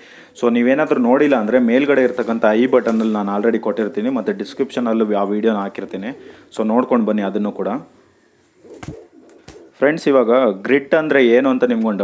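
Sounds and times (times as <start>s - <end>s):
pigeon cooing: 1.3s - 7.0s, 7.9s - 9.8s.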